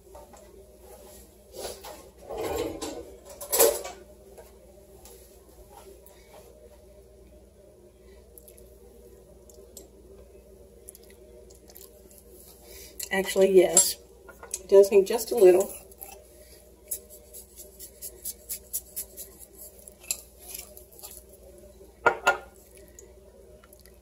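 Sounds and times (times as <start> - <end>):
faint low hum: 0.0 - 24.0.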